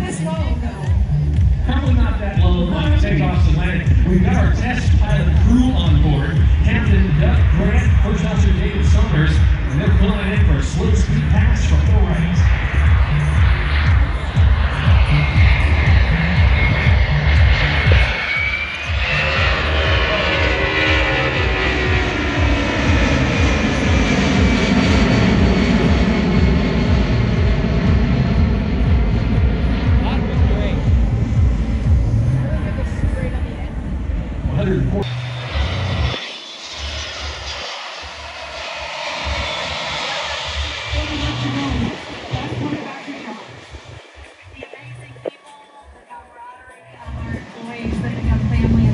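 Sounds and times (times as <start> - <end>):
wind rumbling on microphone: 0.0 - 45.4, 47.0 - 48.9
jet airliner flyby: 0.0 - 48.9.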